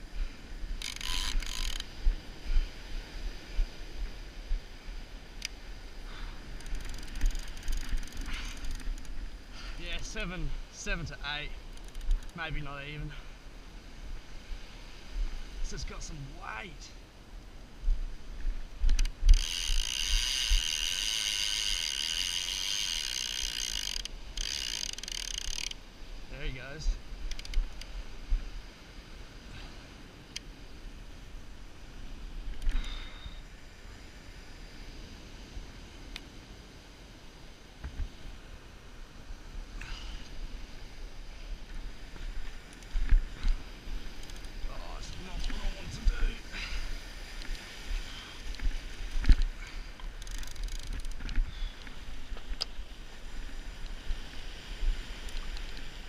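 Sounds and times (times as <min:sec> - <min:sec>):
fishing reel clicker screaming: 0:00.8 - 0:01.9, 0:06.6 - 0:09.1, 0:18.9 - 0:25.8, 0:50.2 - 0:51.2
wind rumble on microphone: 0:26.2 - 0:56.0.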